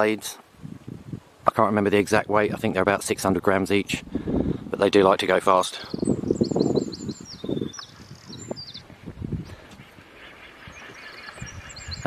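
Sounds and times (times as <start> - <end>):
small bird chirping: 5.9 - 12.0.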